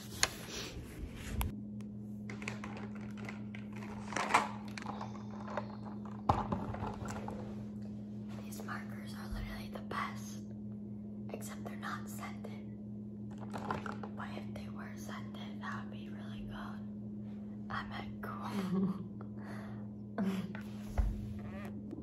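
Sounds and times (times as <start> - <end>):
steady low hum: 0.0 - 22.0
woman whispering: 8.4 - 10.5, 11.3 - 12.7, 14.2 - 16.8, 17.7 - 18.6.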